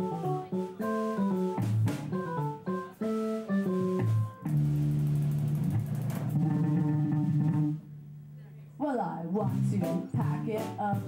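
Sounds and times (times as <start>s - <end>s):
electric guitar low notes: 0.0s - 7.9s.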